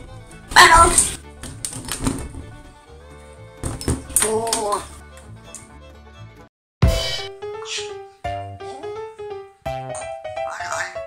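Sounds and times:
background music: 0.0s - 11.0s
parrot cry: 10.4s - 11.0s.

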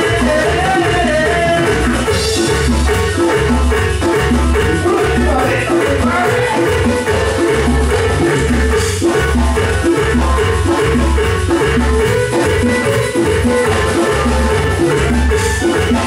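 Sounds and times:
live latin dance band: 0.0s - 16.0s.

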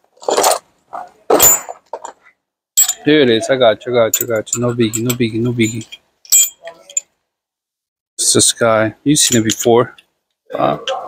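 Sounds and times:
metal hand tools clinking: 2.8s - 3.1s, 4.1s - 7.1s.

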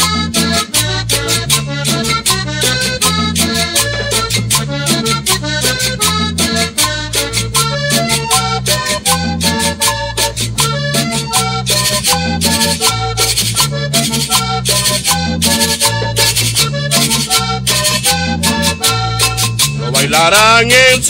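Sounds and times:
button accordion melodic runs: 0.0s - 21.0s
fast percussion beat: 0.0s - 21.0s
stepping bass line: 0.0s - 21.0s.

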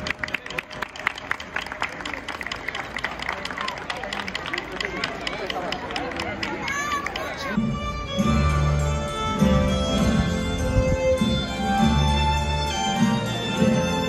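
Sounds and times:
crowd clapping: 0.0s - 7.6s
voices chattering: 0.0s - 9.0s
music: 7.5s - 14.0s.

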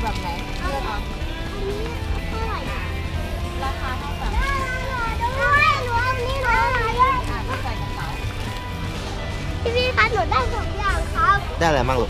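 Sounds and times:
young child talking: 0.6s - 2.9s, 4.3s - 7.5s, 9.6s - 11.5s.

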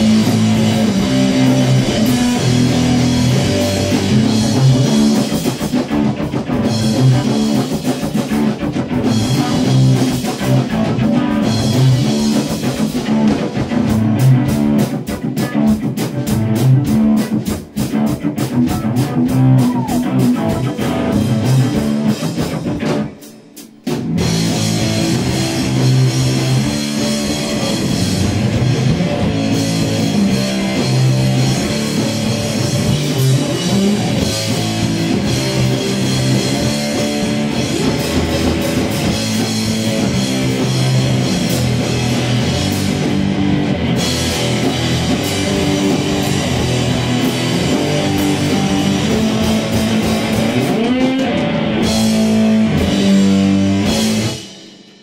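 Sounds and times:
distorted electric guitar: 0.0s - 55.0s
drum kit: 0.0s - 55.0s.

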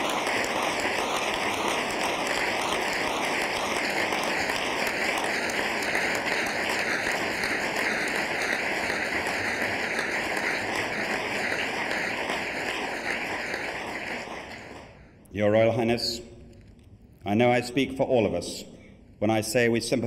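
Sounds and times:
audience applause: 0.0s - 15.0s.

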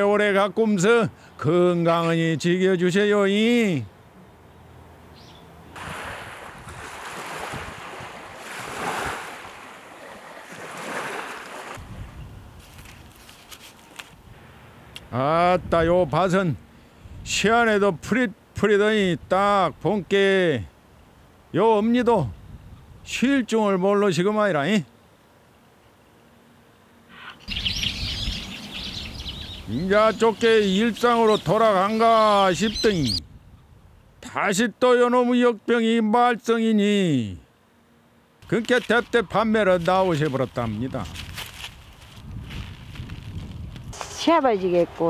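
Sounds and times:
small birds chirping: 3.8s - 5.6s, 27.0s - 33.3s
sea waves washing in: 5.8s - 11.8s.

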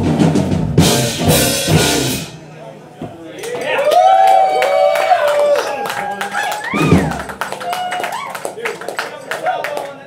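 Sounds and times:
drums and cymbals: 0.0s - 2.5s.

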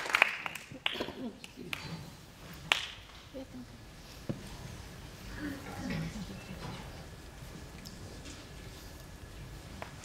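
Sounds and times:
audience murmur and rustle: 0.0s - 10.0s.

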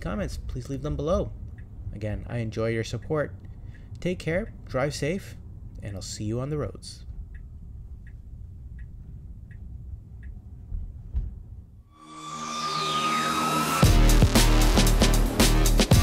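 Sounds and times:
faint ticking: 0.4s - 4.8s, 7.0s - 11.1s
whoosh with falling sweep: 11.9s - 14.9s
music with heavy beat: 12.2s - 16.0s.

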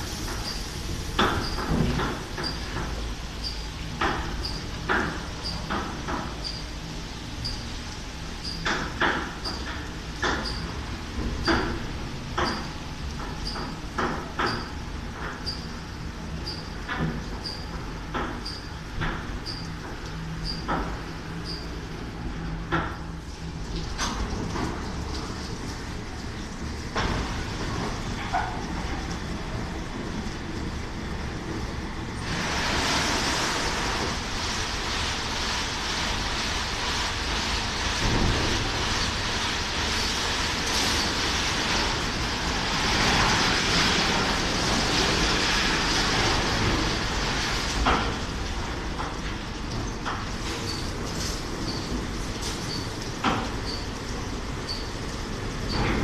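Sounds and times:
car wash motor hum: 0.0s - 56.0s.

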